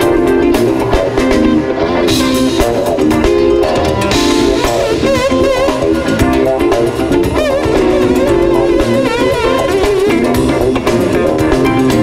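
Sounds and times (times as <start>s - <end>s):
drum kit and cymbals: 0.0s - 12.0s
electric bass: 0.0s - 12.0s
electric guitar: 0.0s - 12.0s.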